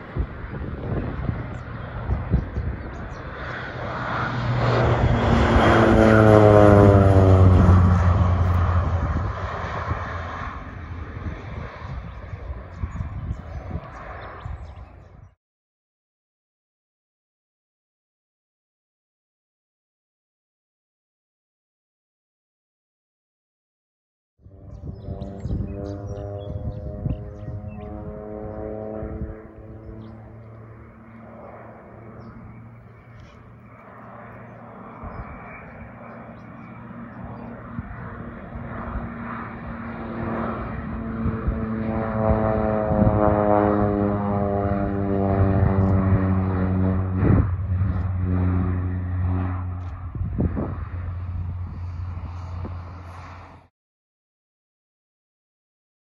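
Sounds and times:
propeller plane passing low: 0:00.0 - 0:15.4, 0:24.4 - 0:53.7.

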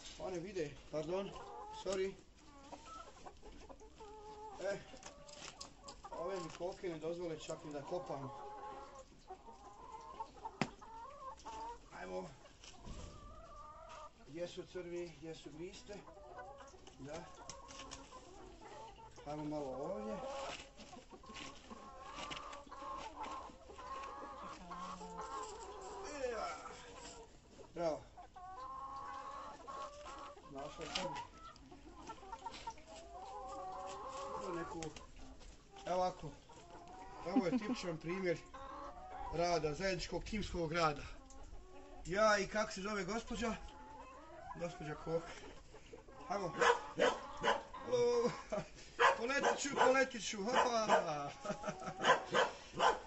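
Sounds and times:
hens clucking: 0:00.0 - 0:53.0
hen squawking: 0:46.4 - 0:47.9.

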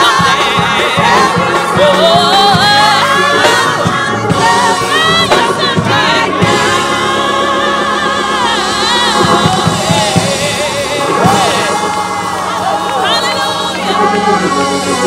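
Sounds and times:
drum kit steady beat: 0:00.0 - 0:15.0
gospel choir singing: 0:00.0 - 0:15.0.

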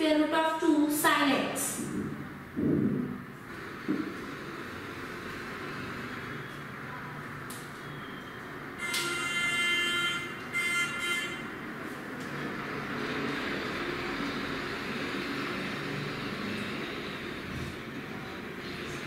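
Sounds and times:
steady background hum: 0:00.0 - 0:19.0
horn-like pitched tone: 0:07.8 - 0:11.7.

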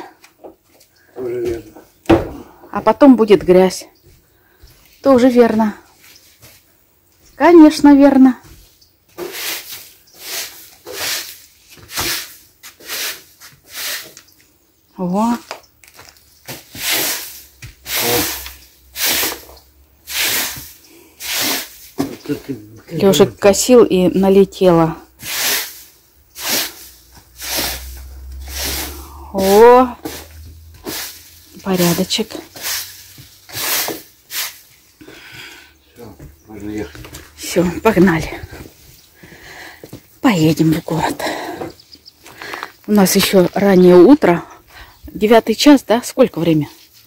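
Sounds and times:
broom sweeping wooden planks: 0:04.7 - 0:06.8, 0:08.5 - 0:14.4, 0:15.9 - 0:22.5, 0:24.3 - 0:39.1, 0:46.4 - 0:47.0.

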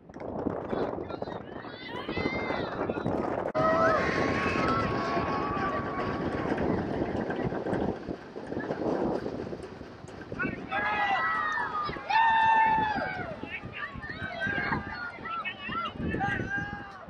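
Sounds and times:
people shouting and calling: 0:01.1 - 0:03.0, 0:03.6 - 0:07.0, 0:10.4 - 0:17.0
crowd murmur: 0:01.2 - 0:17.0.

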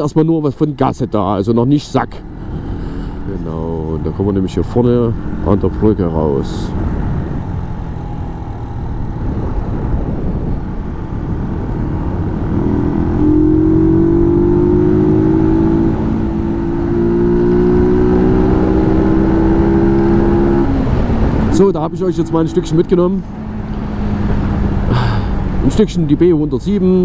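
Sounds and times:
motorcycle engine accelerating: 0:01.8 - 0:25.7.

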